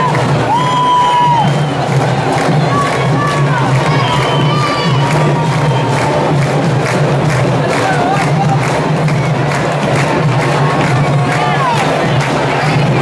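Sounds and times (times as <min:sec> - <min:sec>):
crowd cheering and shouting: 0:00.0 - 0:13.0
drum line drumming: 0:00.0 - 0:13.0.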